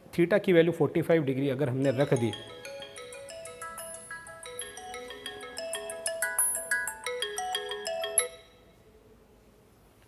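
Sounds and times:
phone ringtone melody: 0:01.8 - 0:08.7.

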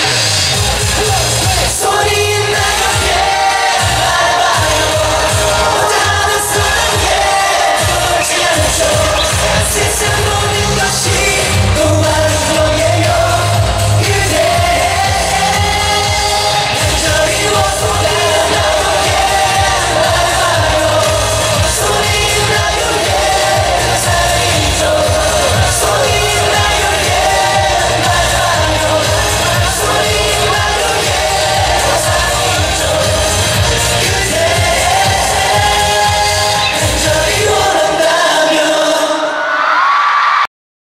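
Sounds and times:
amplified backing track with beat: 0:00.0 - 0:38.3
men singing pop song: 0:00.0 - 0:40.0.

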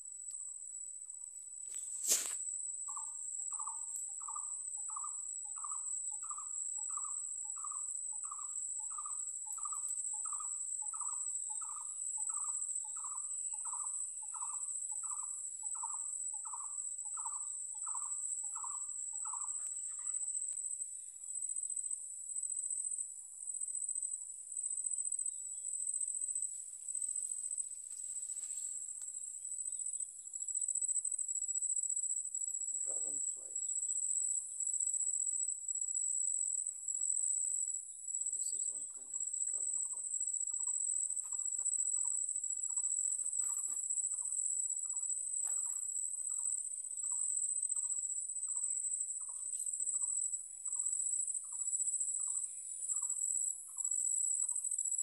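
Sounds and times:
crickets trilling: 0:00.0 - 0:55.0
short repeated insect call: 0:00.0 - 0:55.0.

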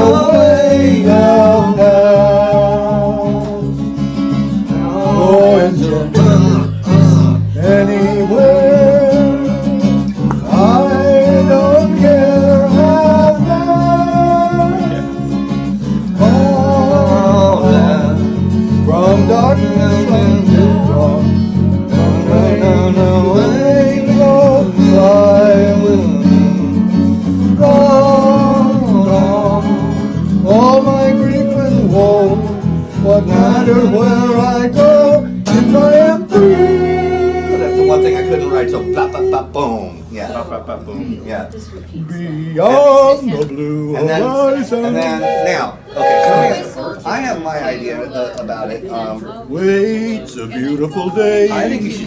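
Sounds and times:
strummed guitars: 0:00.0 - 0:41.0, 0:42.6 - 0:47.2.

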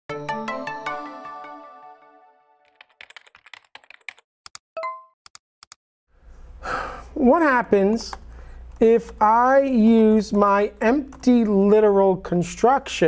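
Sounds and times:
sharp typing-like clicks: 0:10.0 - 0:11.5.

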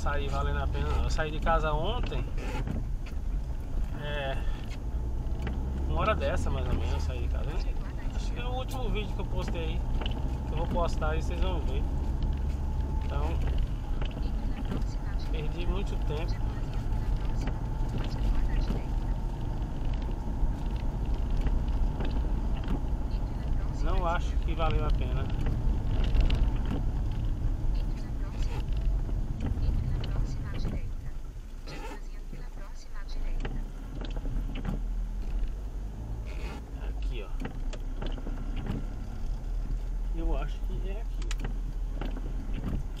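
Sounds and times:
car engine and tyre rumble: 0:00.0 - 0:43.0.

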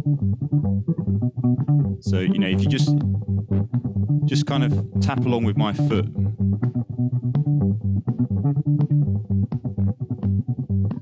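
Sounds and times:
electric bass guitar: 0:00.0 - 0:11.0.

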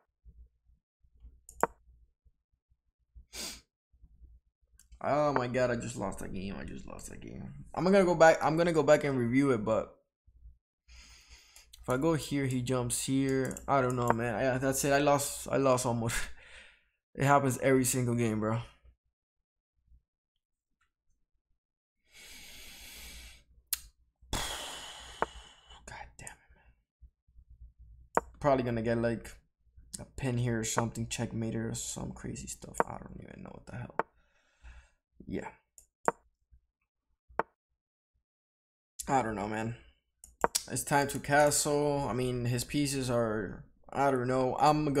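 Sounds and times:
computer mouse clicks: 0:13.4 - 0:14.2.

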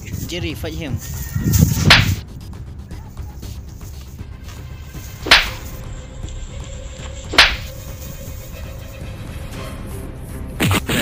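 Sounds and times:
low background music: 0:00.0 - 0:11.0
whip-like punch hits: 0:01.8 - 0:02.2, 0:05.2 - 0:05.7, 0:07.3 - 0:07.7.

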